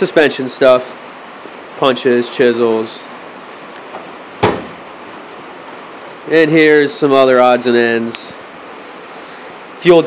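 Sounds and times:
room hiss: 0:00.0 - 0:10.0
metal drawer banging shut: 0:04.4 - 0:04.8.

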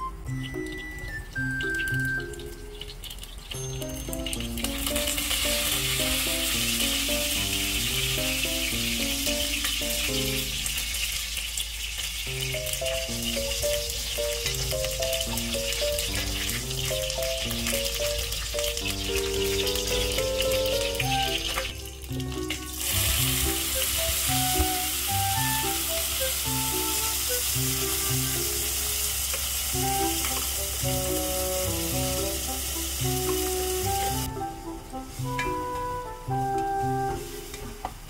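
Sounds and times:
background music with steady beat: 0:00.0 - 0:02.8, 0:03.6 - 0:10.7, 0:12.4 - 0:28.9, 0:29.7 - 0:38.0
oil sizzling in a pot: 0:00.0 - 0:38.0.

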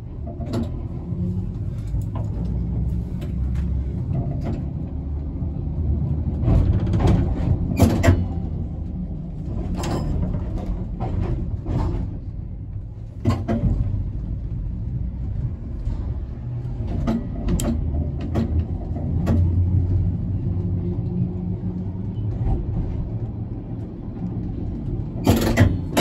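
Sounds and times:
tram clicks and clunks: 0:00.0 - 0:26.0
tram rumbling on rails: 0:00.0 - 0:26.0.

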